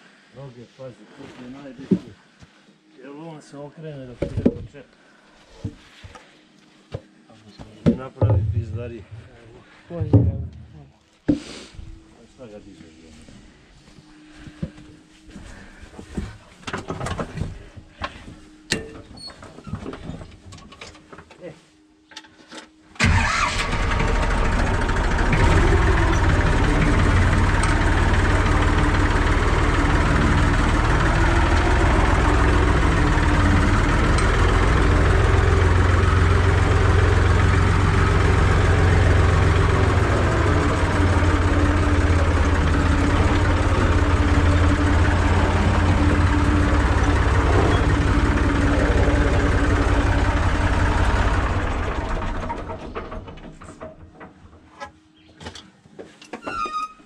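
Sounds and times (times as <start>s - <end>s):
tractor engine starting and running: 8.3s - 9.3s, 23.0s - 55.0s.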